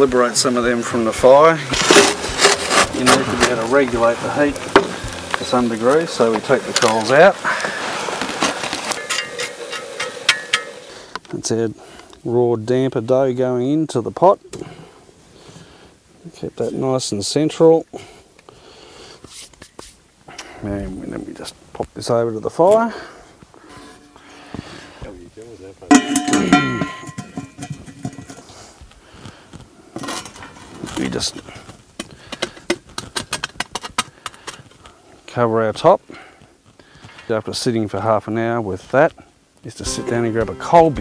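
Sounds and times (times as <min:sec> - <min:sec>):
hot coals crackling scrape: 0:00.0 - 0:12.2, 0:14.7 - 0:21.9, 0:22.5 - 0:37.8
metal clank with ringing: 0:09.0 - 0:10.8, 0:25.9 - 0:28.3.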